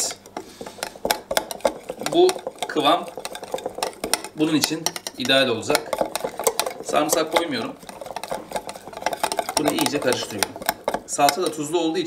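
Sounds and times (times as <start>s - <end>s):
wire whisk clicking on glass: 0.8s - 11.6s.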